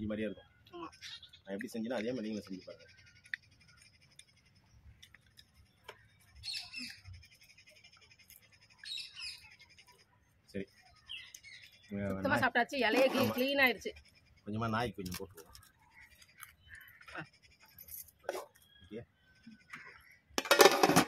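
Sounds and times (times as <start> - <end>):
faint high bird trill: 0.0 - 20.4
birds chirping: 0.0 - 20.9.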